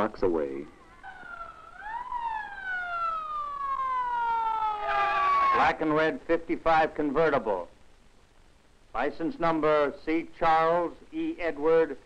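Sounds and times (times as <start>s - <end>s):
police siren wailing: 0.7s - 5.8s.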